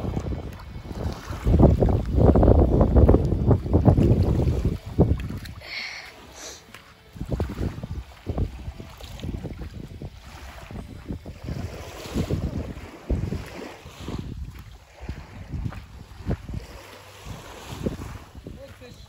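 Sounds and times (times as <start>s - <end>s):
calm sea water washing: 0.0s - 19.0s
wind buffeting microphone: 0.0s - 19.0s.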